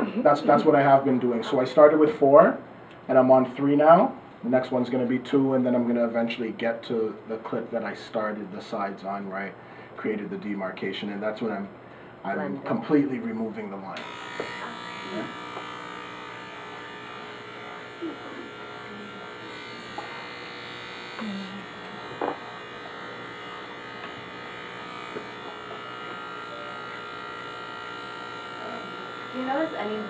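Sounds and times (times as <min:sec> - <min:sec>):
electric hair clippers buzzing: 0:13.9 - 0:30.0.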